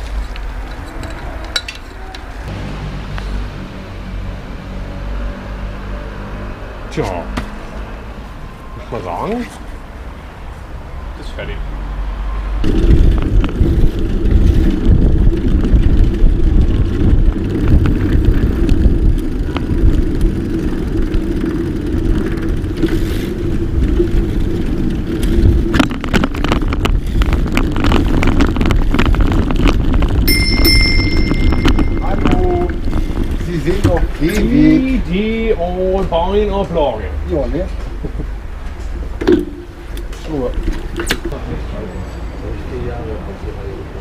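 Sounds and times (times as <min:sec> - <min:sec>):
bicycle tyres on road: 0:00.0 - 0:44.0
steady drone: 0:02.4 - 0:06.9
wind on microphone: 0:12.6 - 0:34.5
high ringing tone: 0:30.3 - 0:32.8.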